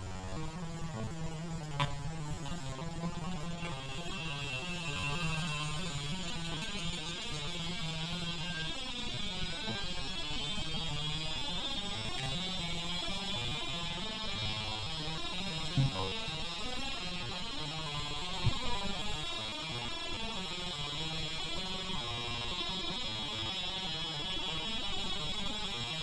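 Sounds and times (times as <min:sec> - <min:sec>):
slowed hard drive drone: 0:00.0 - 0:26.0
thin rising whine: 0:00.0 - 0:26.0.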